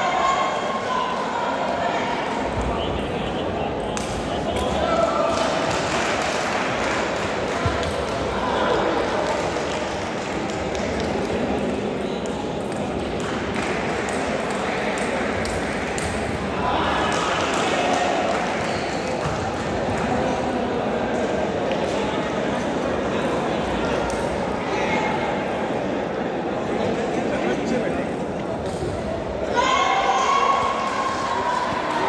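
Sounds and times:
murmur of many voices: 0.0s - 32.0s.

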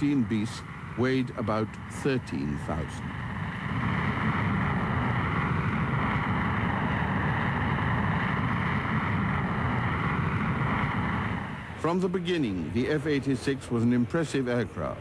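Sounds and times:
jet aircraft in flight: 0.0s - 15.0s.

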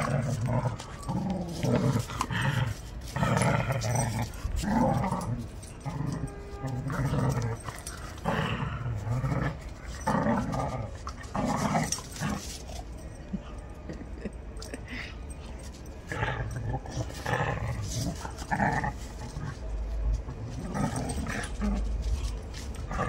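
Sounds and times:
dogs growling in play: 0.0s - 23.0s.

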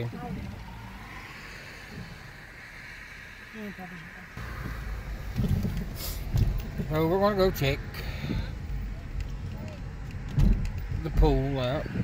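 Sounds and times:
car engine and road rumble: 0.0s - 12.0s.

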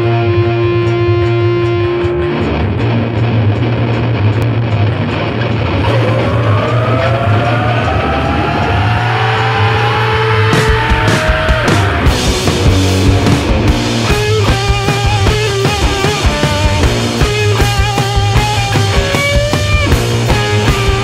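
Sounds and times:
distorted electric guitar: 0.0s - 21.0s
steady low bass: 0.0s - 21.0s.

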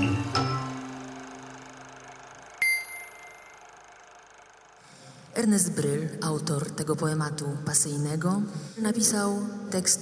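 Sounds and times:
music: 0.0s - 2.2s.

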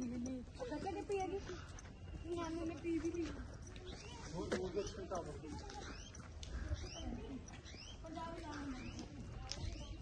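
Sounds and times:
bird chirping: 0.0s - 10.0s.

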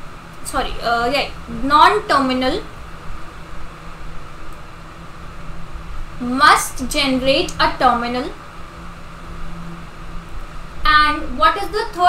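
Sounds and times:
steady low hum: 0.0s - 12.0s
woman speaking: 0.5s - 2.7s, 6.2s - 8.4s, 10.9s - 12.0s.

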